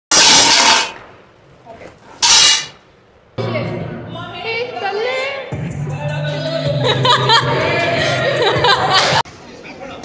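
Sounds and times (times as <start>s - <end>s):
music with vocals: 3.4s - 9.2s.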